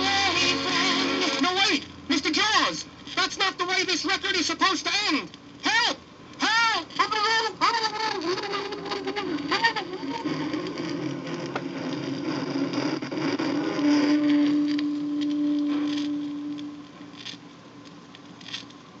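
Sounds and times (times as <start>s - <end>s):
record playing: 0.0s - 19.0s
vinyl surface crackle: 6.9s - 18.9s
held note: 13.6s - 17.0s.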